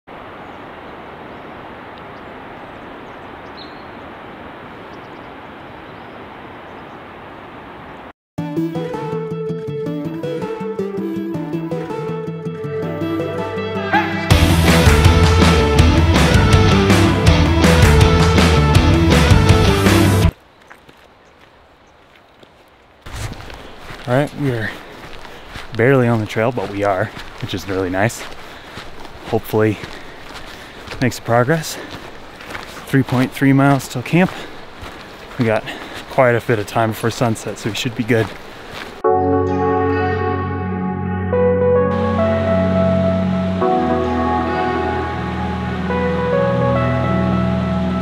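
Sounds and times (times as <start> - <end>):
faint high chirp: 3.5 - 4.0
rock music: 8.4 - 20.3, 39.0 - 48.0
footsteps on dirt trail: 20.3 - 39.0.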